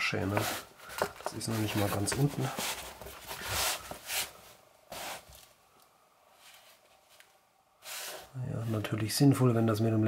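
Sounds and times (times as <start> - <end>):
fabric pouch rustling and scraping: 0.2 - 5.5.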